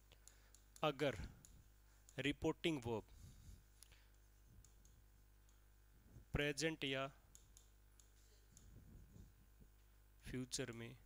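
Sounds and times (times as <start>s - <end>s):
pen tapping on touchscreen: 4.6s - 5.6s.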